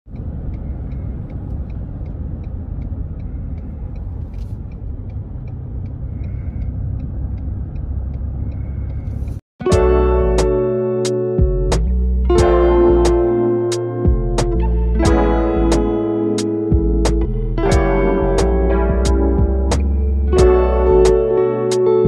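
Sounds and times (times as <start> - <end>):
car road and engine rumble: 0.0 - 22.0
light even ticking: 0.1 - 22.0
plucked guitar music: 9.6 - 22.0.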